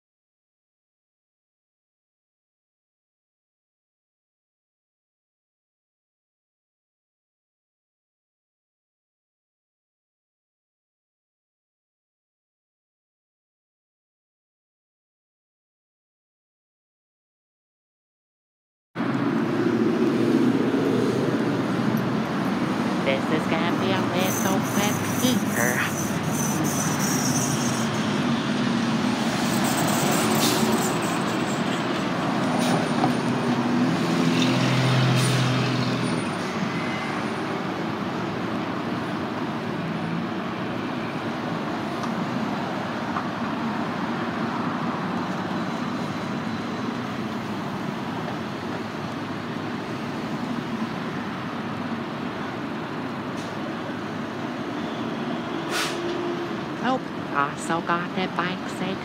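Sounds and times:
heavy vehicle engine: 0:19.0 - 0:59.0
vehicles passing: 0:19.0 - 0:59.0
short hisses: 0:55.7 - 0:56.0.

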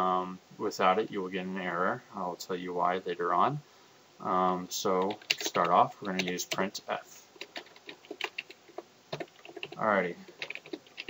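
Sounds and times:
keyboard typing clicks: 0:05.0 - 0:06.6, 0:07.4 - 0:11.0.

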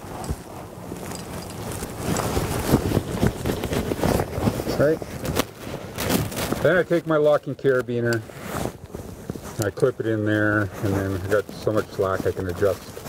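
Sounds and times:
cord rustling and scraping: 0:00.0 - 0:13.0.

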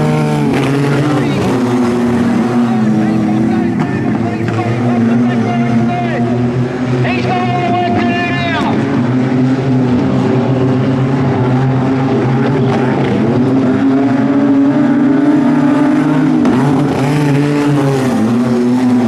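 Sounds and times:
race car engines running: 0:00.0 - 0:19.0.

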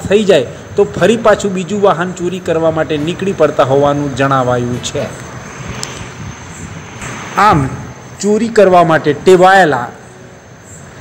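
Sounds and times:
background hiss and rumble: 0:00.0 - 0:11.0.

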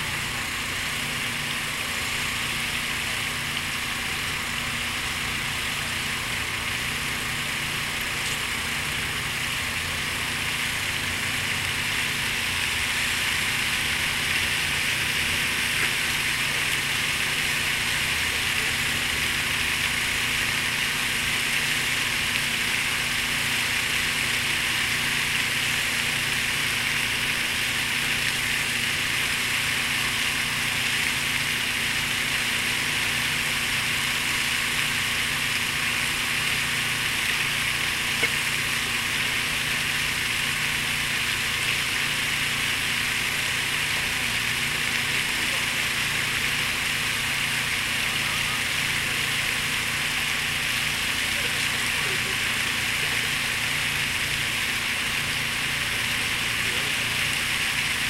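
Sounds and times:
fountain water rushing: 0:00.0 - 0:58.0.

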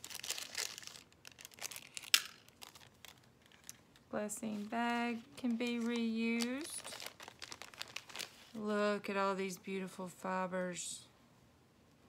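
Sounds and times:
plastic packet crinkling: 0:00.0 - 0:08.6.

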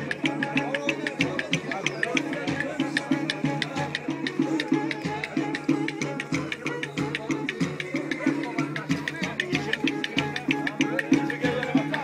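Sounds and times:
bowed fiddle dance tune: 0:00.0 - 0:12.0
percussive beat: 0:00.0 - 0:12.0.

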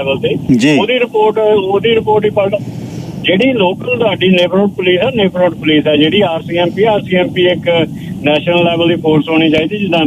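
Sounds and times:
person talking: 0:00.0 - 0:02.6, 0:03.3 - 0:10.0.

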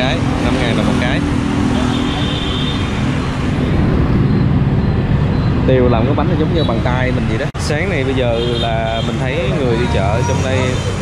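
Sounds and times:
motorbike engines passing: 0:00.0 - 0:11.0
traffic rumble: 0:00.0 - 0:11.0.

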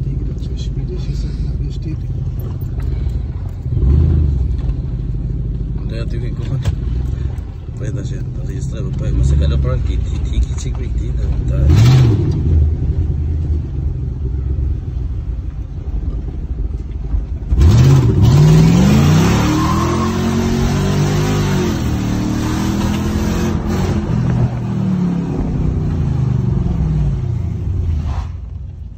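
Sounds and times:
car engine revving: 0:00.0 - 0:28.6.

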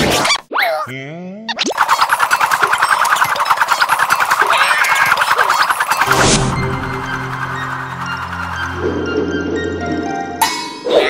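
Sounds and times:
upward-sliding cartoon sound: 0:01.5 - 0:09.2
rapid warbling trill: 0:01.7 - 0:10.4.

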